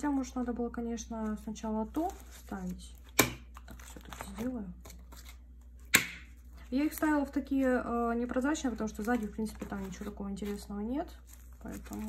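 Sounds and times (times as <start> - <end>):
plastic sleeves crinkling: 1.0 - 12.0.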